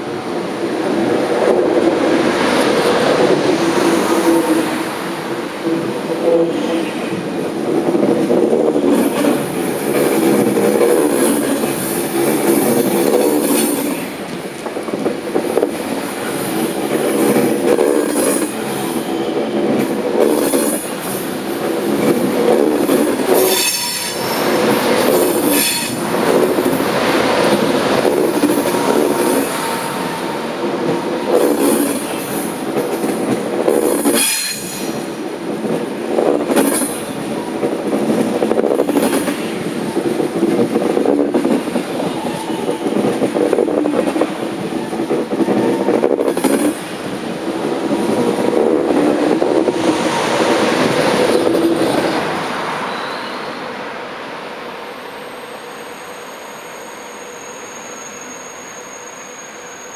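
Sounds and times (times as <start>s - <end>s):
train wheels rumbling on rail: 0.0s - 59.9s
high-pitched wheel squeal: 55.7s - 59.9s.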